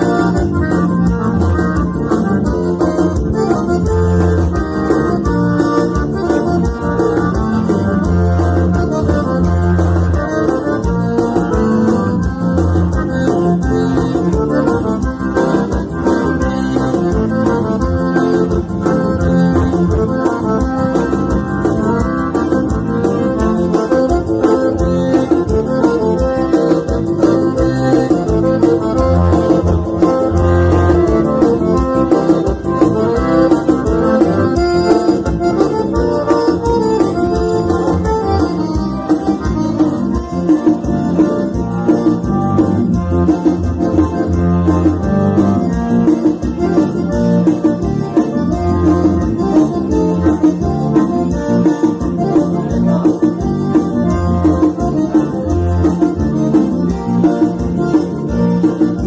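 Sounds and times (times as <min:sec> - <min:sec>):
accordion playing dance tune: 0:00.0 - 0:59.0
electronic keyboard accompaniment: 0:00.0 - 0:59.0.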